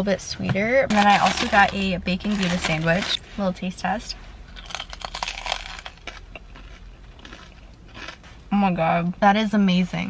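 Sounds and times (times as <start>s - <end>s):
crunching bites into sandwich: 4.6s - 8.3s
soft chewing: 4.6s - 8.5s.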